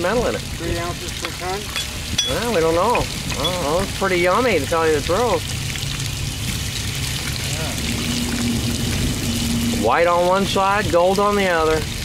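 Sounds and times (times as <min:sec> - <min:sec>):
water splashing and hissing on hot metal: 0:00.0 - 0:12.0.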